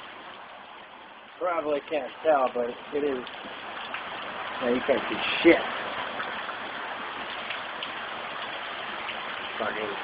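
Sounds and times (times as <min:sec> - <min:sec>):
heavy rain pouring: 0:00.0 - 0:10.0.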